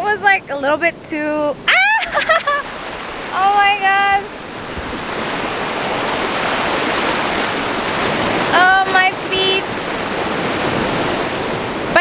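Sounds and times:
ocean surf washing up: 1.1s - 12.0s.

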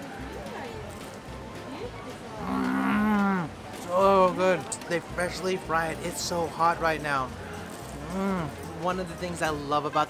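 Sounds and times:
man humming mmm: 8.0s - 8.6s.

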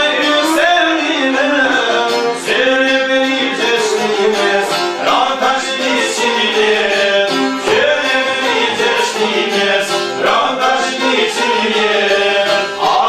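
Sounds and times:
man singing: 0.0s - 13.0s
plucked lutes strumming: 0.0s - 13.0s.

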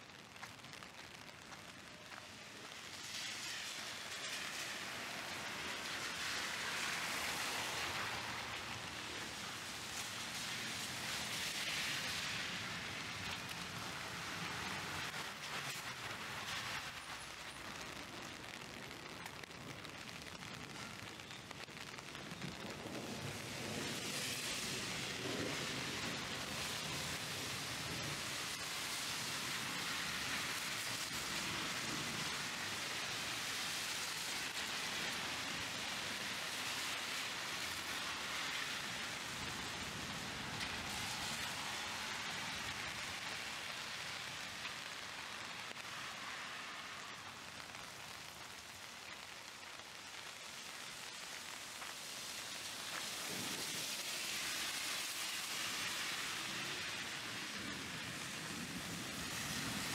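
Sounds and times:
heavy rain on street: 0.0s - 59.9s.

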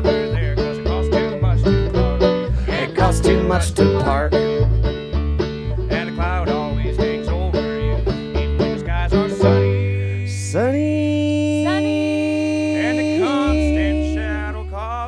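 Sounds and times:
acoustic guitar: 0.0s - 15.0s
fast-picked plucked strings: 0.0s - 15.0s
sung harmony notes: 0.0s - 15.0s
upright bass: 0.0s - 15.0s.

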